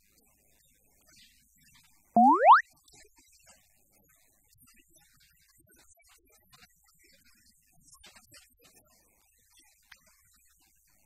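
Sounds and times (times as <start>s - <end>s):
cartoon boing sound effect: 2.2s - 2.6s.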